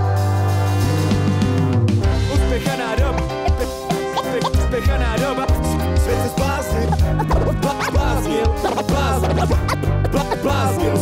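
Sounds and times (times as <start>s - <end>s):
bass line and drums: 0.0s - 11.0s
turntable scratching: 2.6s - 5.5s, 6.2s - 11.0s.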